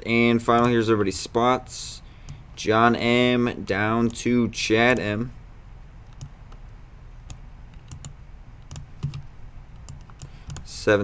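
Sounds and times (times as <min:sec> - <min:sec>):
computer mouse clicks: 0:06.0 - 0:10.7
keyboard keys tapping: 0:07.3 - 0:10.7.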